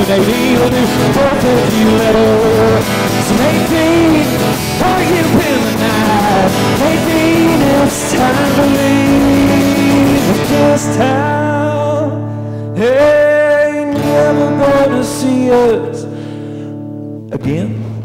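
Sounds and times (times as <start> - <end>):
man singing: 0.0 - 16.2, 17.3 - 18.0
strummed acoustic guitar: 0.0 - 18.0.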